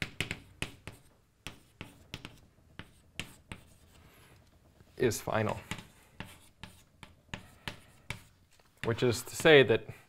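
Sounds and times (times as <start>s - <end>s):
chalk tapping and scratching: 0.0s - 10.0s.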